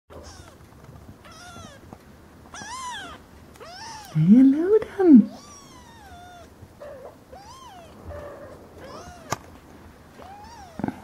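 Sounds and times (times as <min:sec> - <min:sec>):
kitten mewing: 0:02.5 - 0:04.3, 0:05.3 - 0:09.5, 0:10.2 - 0:11.0.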